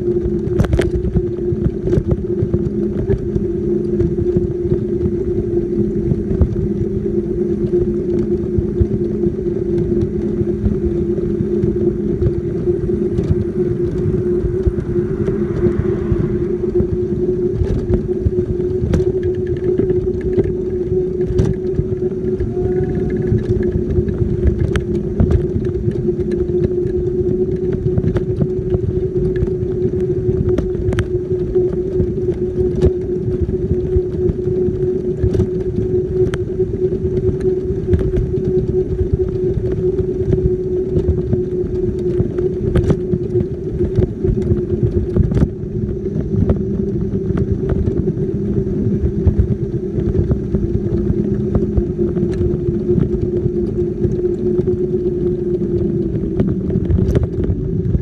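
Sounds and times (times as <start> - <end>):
wheelchair motor whine: 0.0 - 58.0
wheels rumbling on road: 0.0 - 58.0.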